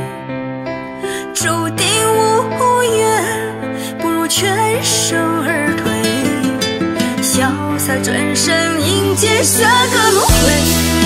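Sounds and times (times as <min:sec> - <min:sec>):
instrumental pop ballad: 0:00.0 - 0:11.0.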